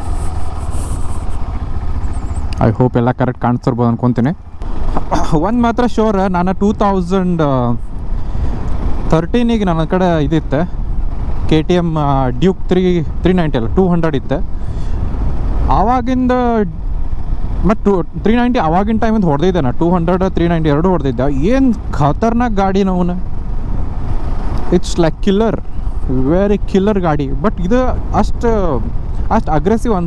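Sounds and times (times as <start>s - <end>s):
motorcycle engine and wind rumble: 0.0s - 30.0s
man talking: 2.6s - 4.4s, 5.0s - 7.8s, 9.1s - 10.7s, 11.5s - 14.4s, 15.7s - 16.8s, 17.6s - 23.2s, 24.7s - 30.0s.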